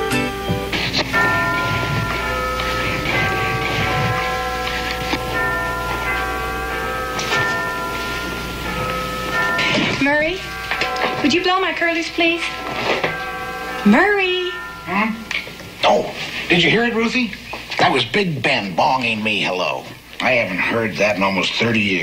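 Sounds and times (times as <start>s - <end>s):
large bells striking: 0.0s - 17.4s.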